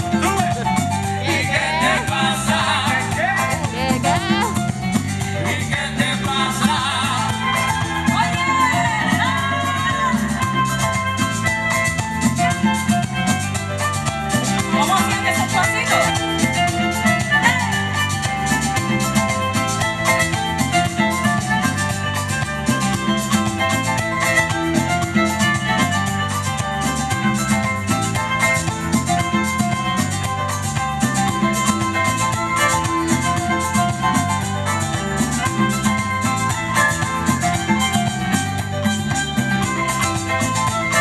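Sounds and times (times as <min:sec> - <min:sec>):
bass line: 0:00.0 - 0:41.0
keyboard: 0:00.0 - 0:41.0
latin dance band playing: 0:00.0 - 0:41.0
percussion beat: 0:00.0 - 0:41.0.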